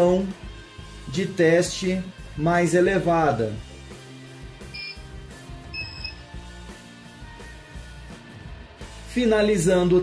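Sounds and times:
quiet background music: 0.0s - 10.0s
short electronic keypad beep: 4.8s - 5.0s, 5.8s - 6.2s.

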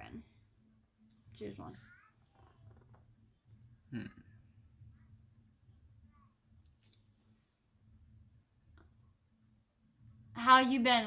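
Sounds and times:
faint low hum: 0.0s - 11.0s
person humming hmm: 3.9s - 4.4s.

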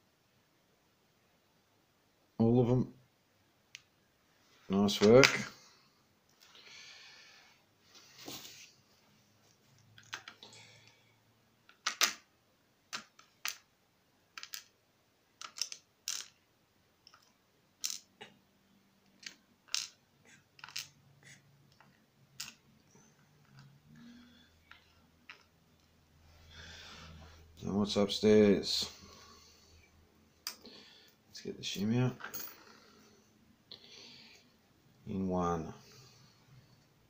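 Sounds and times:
lock parts clicking on plastic: 11.7s - 12.2s, 15.4s - 16.4s.

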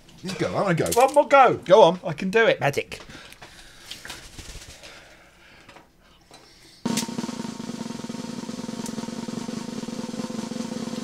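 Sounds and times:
drum roll: 6.9s - 11.0s.

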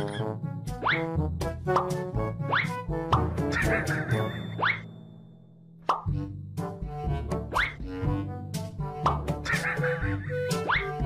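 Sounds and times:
bouncy cartoonish music: 0.0s - 5.0s, 5.8s - 11.0s.

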